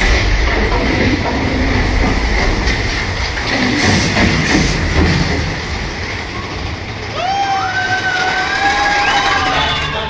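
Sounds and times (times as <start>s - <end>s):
steady rumbling noise: 0.0s - 10.0s.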